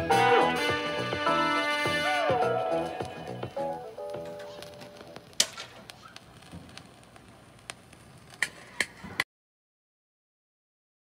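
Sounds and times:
vinyl record crackle and pops: 2.1 - 9.2.

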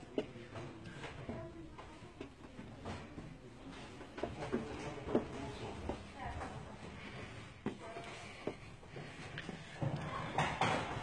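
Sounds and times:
footsteps on stone stairs: 0.0 - 11.0.

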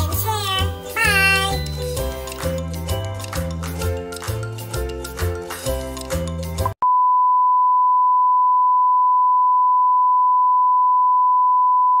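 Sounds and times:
music: 0.0 - 6.8.

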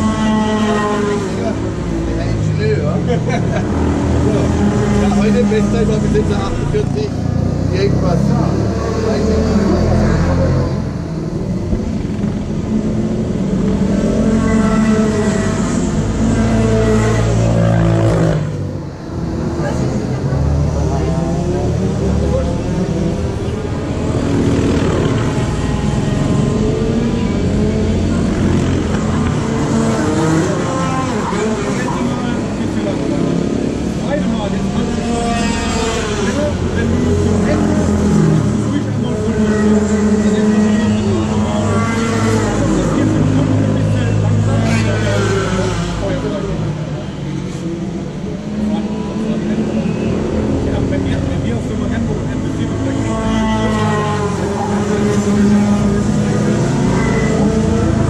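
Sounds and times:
indistinct voices talking: 0.0 - 58.0.

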